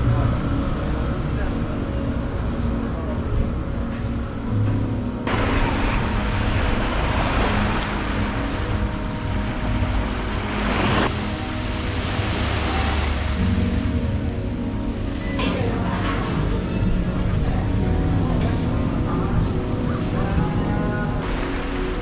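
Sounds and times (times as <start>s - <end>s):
small waves washing onto sand: 5.3s - 13.8s.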